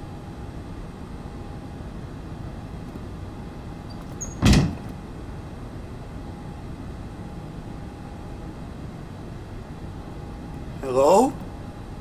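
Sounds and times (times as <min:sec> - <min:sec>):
machine room hum: 0:00.0 - 0:12.0.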